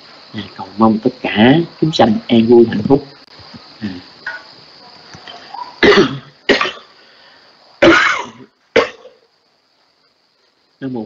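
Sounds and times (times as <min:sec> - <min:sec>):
man coughing: 0:05.8 - 0:06.9, 0:07.8 - 0:09.2.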